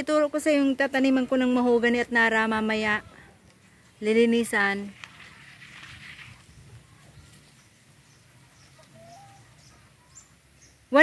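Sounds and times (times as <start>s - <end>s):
chickens calling: 5.1s - 11.0s.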